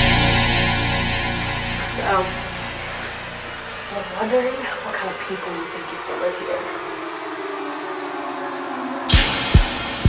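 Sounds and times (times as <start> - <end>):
ominous low drone sliding down: 0.0 - 10.0.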